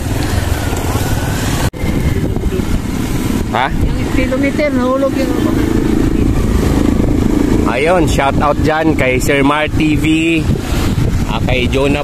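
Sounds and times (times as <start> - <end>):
vehicle engine and road rumble: 0.0 - 12.0
wind noise: 0.0 - 12.0.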